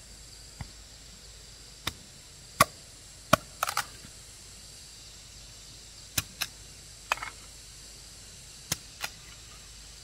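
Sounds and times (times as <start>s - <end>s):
machete chopping bamboo: 2.6s - 3.9s.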